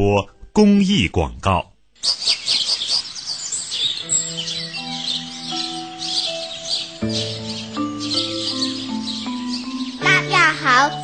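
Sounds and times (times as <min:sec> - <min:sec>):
birds chirping: 0:02.0 - 0:11.0
soft sustained music notes: 0:04.0 - 0:11.0.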